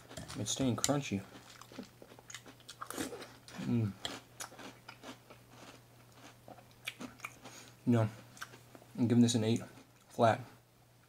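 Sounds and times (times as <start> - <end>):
chewing crunchy cereal: 0.0 - 7.8.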